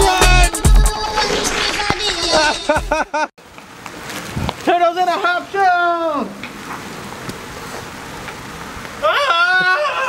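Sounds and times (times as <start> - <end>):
rain hiss: 3.4 - 9.4
long falling cry: 9.0 - 10.0.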